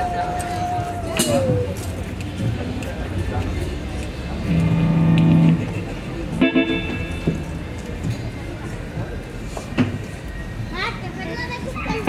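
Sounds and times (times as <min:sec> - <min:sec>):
low background chatter: 0:00.0 - 0:12.0
electric guitar plucked notes: 0:04.5 - 0:07.8.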